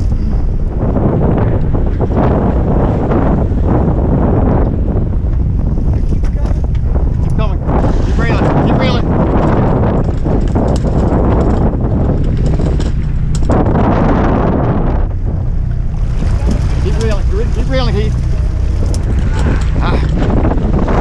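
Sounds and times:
low rumble of boat and water: 0:00.0 - 0:21.0
wind buffeting microphone: 0:00.0 - 0:21.0.

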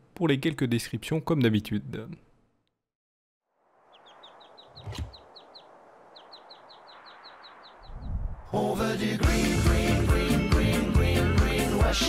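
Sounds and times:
bird chirping: 0:03.8 - 0:08.4.

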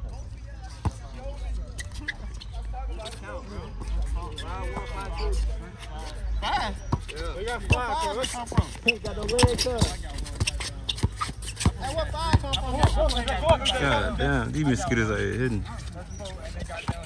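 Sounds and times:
basketball bouncing on asphalt: 0:00.0 - 0:01.2, 0:06.8 - 0:14.0, 0:16.4 - 0:17.0
players talking and shouting: 0:00.0 - 0:17.0.

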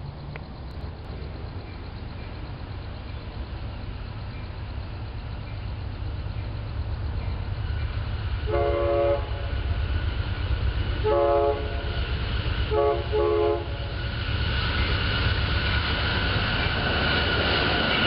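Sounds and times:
train diesel rumble: 0:00.0 - 0:18.0
locomotive air horn blast: 0:08.5 - 0:09.5, 0:11.0 - 0:12.0, 0:12.7 - 0:13.9.

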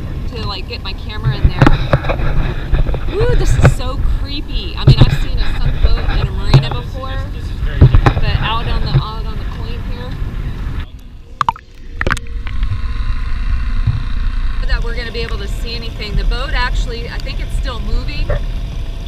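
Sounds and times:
voices: 0:00.0 - 0:02.0, 0:03.1 - 0:12.2, 0:14.6 - 0:18.4
wind on microphone: 0:00.0 - 0:18.4
water noise: 0:00.0 - 0:19.0.

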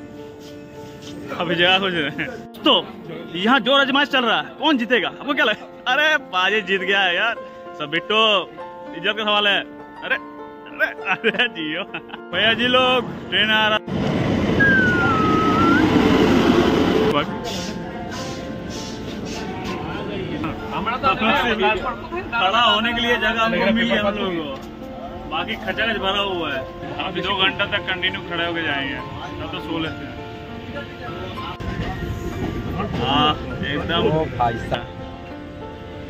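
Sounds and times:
train passing rumble: 0:12.5 - 0:22.3, 0:24.3 - 0:36.0
thin whistle: 0:14.6 - 0:15.9
train rumble inside coach: 0:31.2 - 0:34.8.

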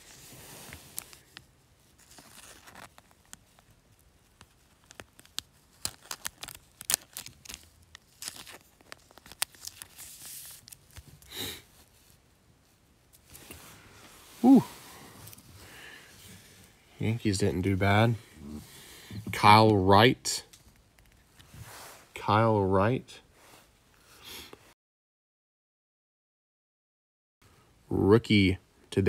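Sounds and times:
plastic sleeve crinkling: 0:00.0 - 0:12.2.

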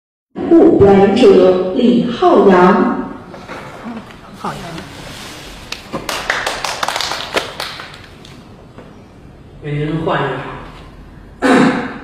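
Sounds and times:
audience applauding: 0:05.6 - 0:08.4.

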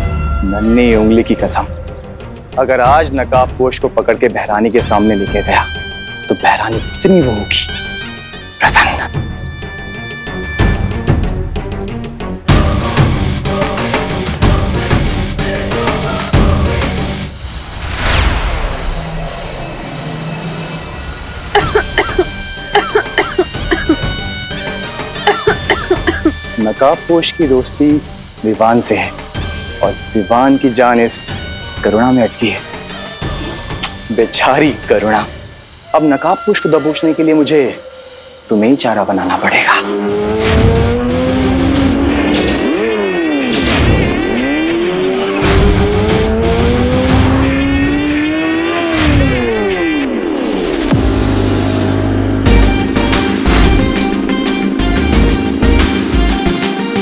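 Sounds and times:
background music with held tones: 0:00.0 - 0:17.3, 0:20.8 - 0:43.4, 0:50.8 - 0:57.0
sharp swooshing hits: 0:17.2 - 0:21.1, 0:40.0 - 0:47.9, 0:48.8 - 0:57.0
woman coughing: 0:21.5 - 0:24.1, 0:25.2 - 0:26.4
motorcycle engine revving: 0:39.4 - 0:57.0.

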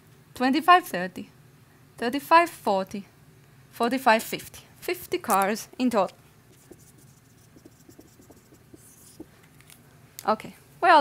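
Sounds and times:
marker scratching on whiteboard: 0:06.5 - 0:09.4.

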